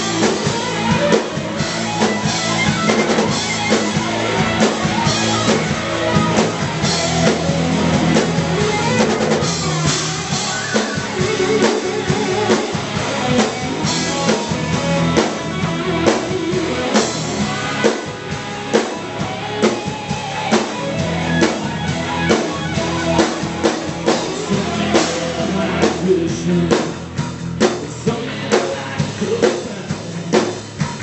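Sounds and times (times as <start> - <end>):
bass guitar: 0.0 - 31.0
drum kit beat: 0.0 - 31.0
electric guitars: 0.0 - 31.0.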